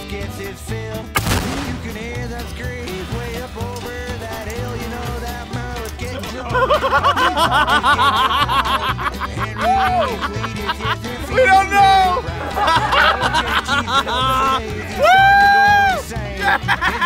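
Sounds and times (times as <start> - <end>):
country music: 0.0 - 17.0
loud blast: 1.2 - 3.6.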